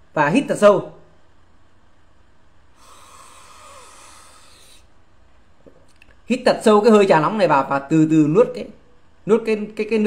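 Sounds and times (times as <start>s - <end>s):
man breathing in through nose: 2.8s - 5.0s.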